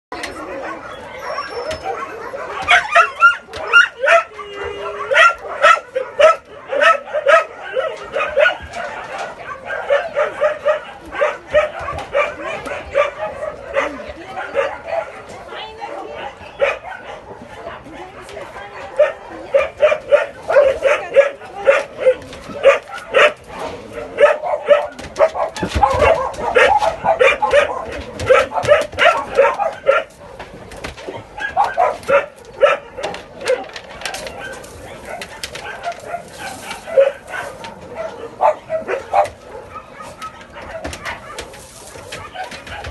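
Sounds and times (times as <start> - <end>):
dogs barking and yipping: 0.2 - 42.9.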